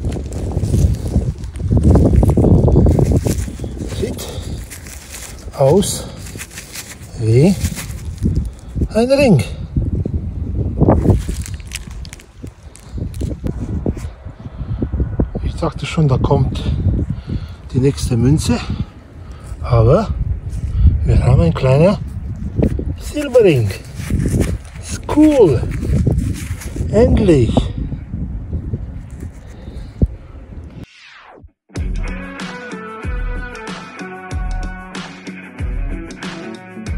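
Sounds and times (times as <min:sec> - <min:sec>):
handling rustles and clicks: 0:00.0 - 0:08.8, 0:11.0 - 0:14.1, 0:22.2 - 0:27.0
wind rumbling on microphone: 0:00.0 - 0:30.9.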